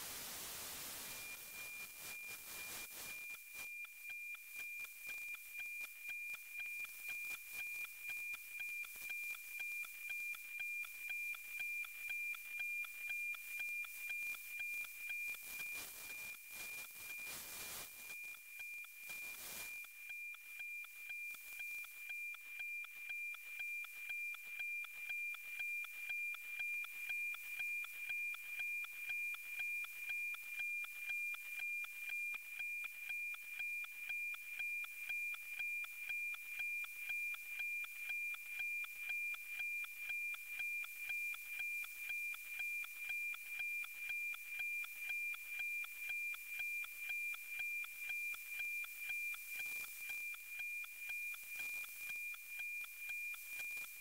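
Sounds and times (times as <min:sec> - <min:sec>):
radio hiss: 0:00.0 - 0:03.2, 0:16.6 - 0:17.9
steady high tone with tick-tock beat: 0:00.8 - 0:54.0.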